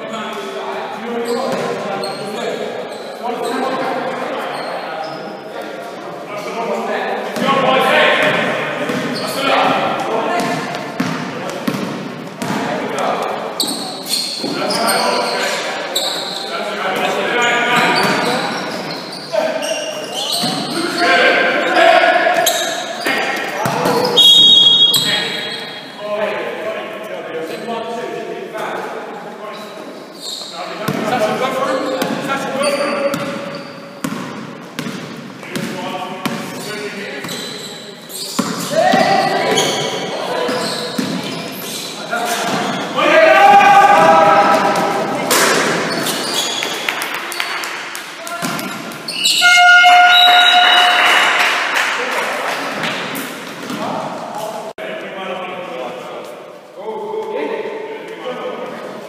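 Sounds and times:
players' voices: 0:00.0 - 0:59.0
basketball bouncing on wooden floor: 0:10.4 - 0:12.6, 0:34.0 - 0:36.5.

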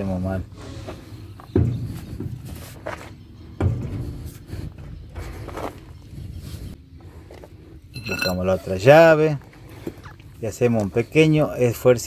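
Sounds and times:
dull thumps: 0:01.4 - 0:05.9.

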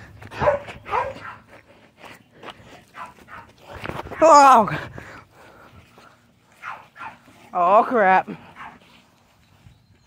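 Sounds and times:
footsteps on dirt: 0:00.0 - 0:10.0.

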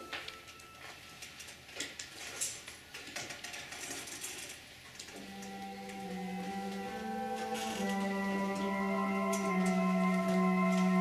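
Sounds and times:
electronic organ chord: 0:05.2 - 0:11.0.

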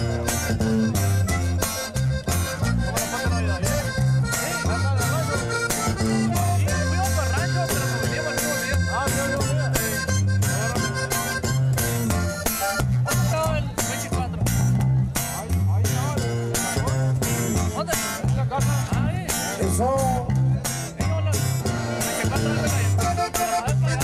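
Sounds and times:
button accordion melody: 0:00.0 - 0:14.9, 0:16.0 - 0:24.0
bouncing bass line: 0:00.0 - 0:24.0
strummed twelve-string guitar: 0:00.0 - 0:24.0.

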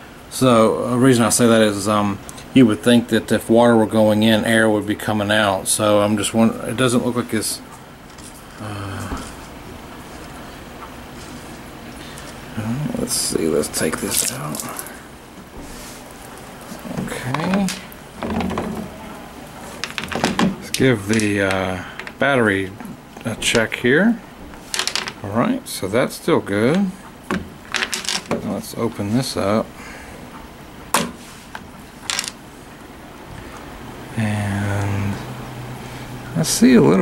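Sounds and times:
man mumbling: 0:08.6 - 0:09.4, 0:16.8 - 0:17.8, 0:34.1 - 0:35.3.

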